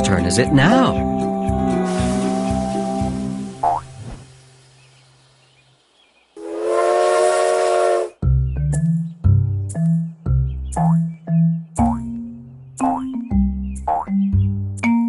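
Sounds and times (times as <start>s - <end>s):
held music chord: 0.0s - 3.6s
toy train steam whistle: 1.7s - 3.0s, 6.4s - 8.2s
hiss of steam: 1.8s - 5.6s
springy boing sound effect: 3.6s - 4.0s, 11.8s - 12.2s, 12.8s - 13.2s.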